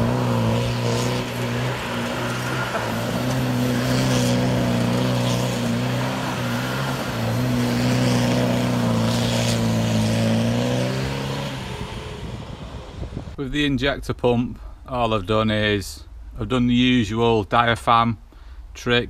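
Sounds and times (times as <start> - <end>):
gravel spraying from tyres: 0.0 - 12.2
diesel engine at high revs: 0.0 - 13.4.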